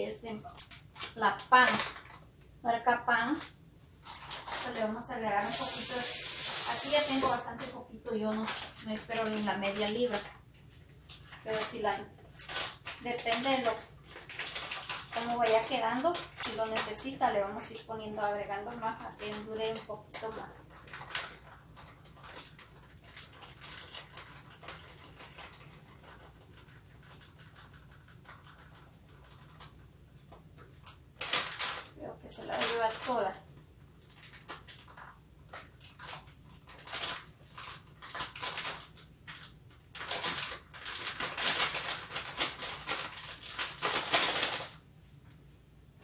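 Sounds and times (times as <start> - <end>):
flour bag crinkling: 0.3 - 2.4, 3.4 - 45.1.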